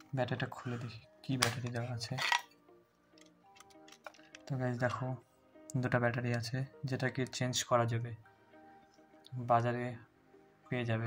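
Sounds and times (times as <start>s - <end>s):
faint background music: 0.0s - 11.0s
man talking: 0.1s - 2.4s.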